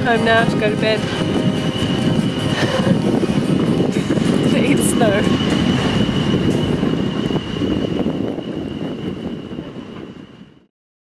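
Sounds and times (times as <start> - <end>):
thin high whine: 0.0 - 10.6
steady low rumble: 0.0 - 10.7.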